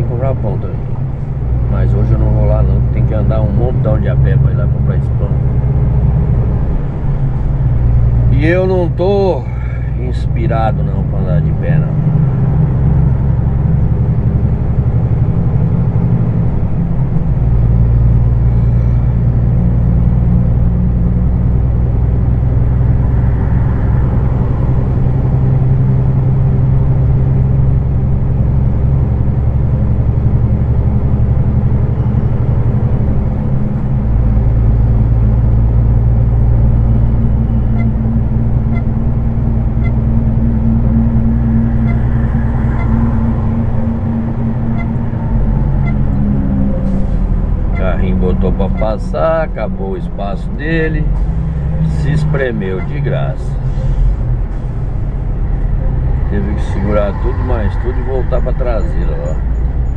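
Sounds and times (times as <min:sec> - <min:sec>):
diesel truck engine droning: 0:00.0 - 0:59.9.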